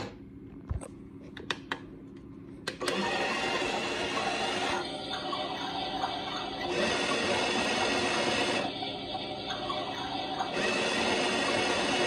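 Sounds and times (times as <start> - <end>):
toy washing machine whirring: 2.8 - 12.0.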